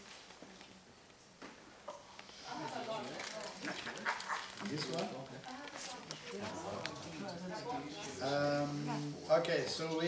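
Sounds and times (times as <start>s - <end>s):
people talking indistinctly: 2.2s - 10.0s.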